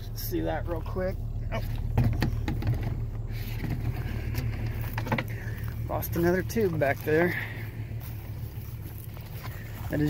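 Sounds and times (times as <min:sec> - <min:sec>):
car engine idling: 0:00.0 - 0:10.0
handling knocks and rustles: 0:01.5 - 0:07.3
footsteps through grass: 0:03.3 - 0:10.0.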